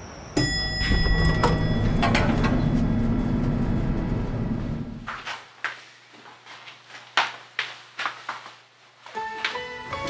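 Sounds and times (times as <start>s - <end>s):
elevator chime: 0.0s - 5.0s
elevator doors sliding open: 0.4s - 5.1s.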